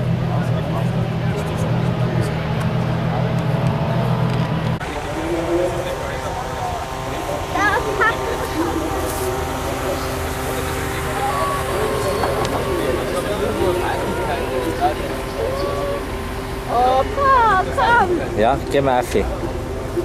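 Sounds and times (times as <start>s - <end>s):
car engine noise: 0.0s - 20.0s
steady low hum: 0.0s - 20.0s
indistinct voices: 4.8s - 18.5s.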